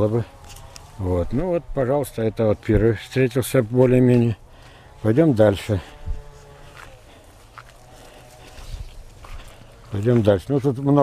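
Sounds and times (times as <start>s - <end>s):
quiet footsteps: 0.0s - 1.4s, 3.6s - 11.0s.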